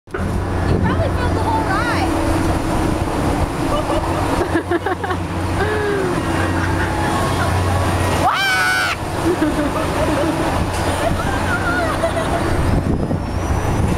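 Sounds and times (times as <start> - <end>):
ride machine hum: 0.1 - 13.9
rushing noise: 0.1 - 13.9
voices calling out: 3.6 - 13.4.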